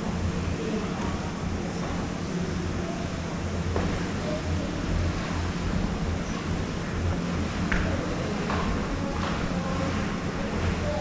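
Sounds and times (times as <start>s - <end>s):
conveyor belt lift running: 0.0s - 11.0s.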